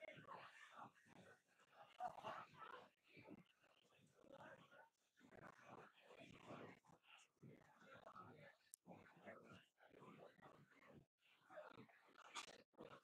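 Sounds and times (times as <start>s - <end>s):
people talking quietly: 0.0s - 13.0s.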